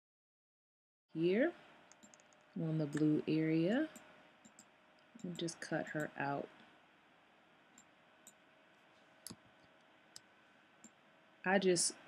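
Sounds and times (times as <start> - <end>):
faint computer mouse clicks: 1.9 - 3.1.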